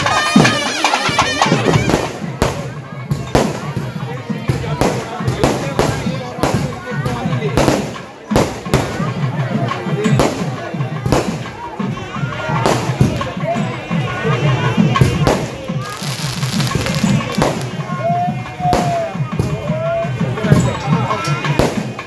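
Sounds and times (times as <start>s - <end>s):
fireworks bursting: 0.0s - 9.2s, 10.0s - 22.0s
music: 0.0s - 22.0s.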